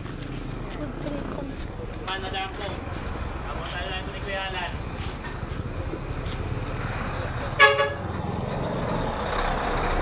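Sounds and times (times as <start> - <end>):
road traffic rumble: 0.0 - 10.0
vehicle horn honk: 7.6 - 8.1.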